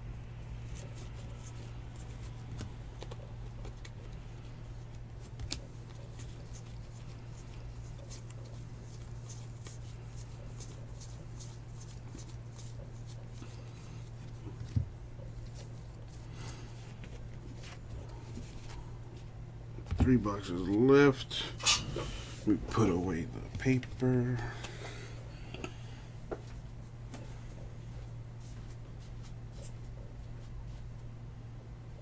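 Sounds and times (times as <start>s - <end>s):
steady low hum: 0.0s - 32.0s
cards flipping in hands: 4.8s - 14.8s.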